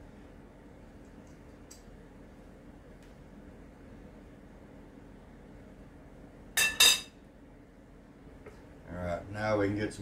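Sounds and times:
metal spoon clinking on dish: 0:06.6 - 0:07.2.

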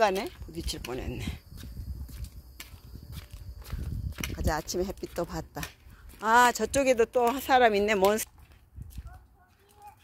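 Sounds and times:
small wheels rolling on concrete: 0:00.0 - 0:10.0.

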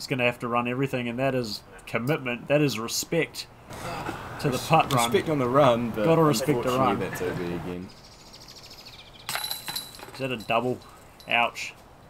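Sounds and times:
faint birdsong: 0:07.0 - 0:11.8
disc hitting metal chains: 0:09.3 - 0:11.4.

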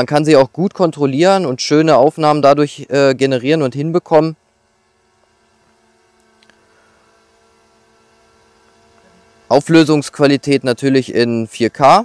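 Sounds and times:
faint tonal hum: 0:00.0 - 0:12.0.

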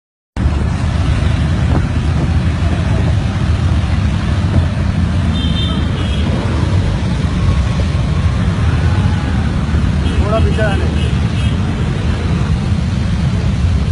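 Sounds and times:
many motorcycle engines rumbling: 0:00.4 - 0:13.9.

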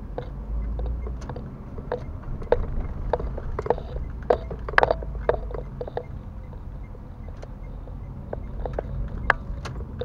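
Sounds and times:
car driving rumble: 0:00.0 - 0:10.0
sharp clicks and knocks: 0:00.1 - 0:10.0.

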